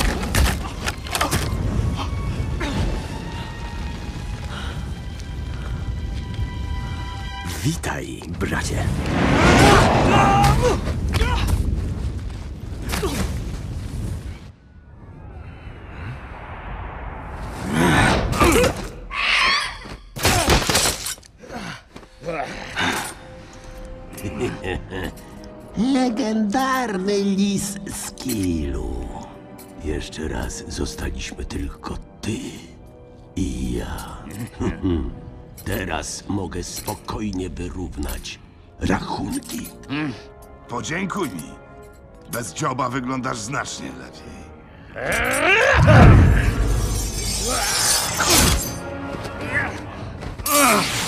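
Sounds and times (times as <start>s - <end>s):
film score music: 0.0s - 51.0s.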